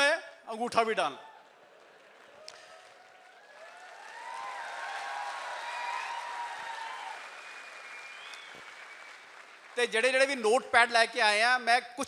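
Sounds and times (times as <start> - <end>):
audience applauding: 1.4 - 10.4.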